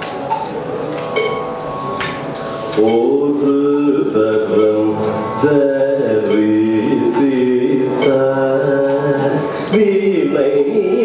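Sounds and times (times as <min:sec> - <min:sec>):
man singing ornamented notes: 0:02.7 - 0:11.0.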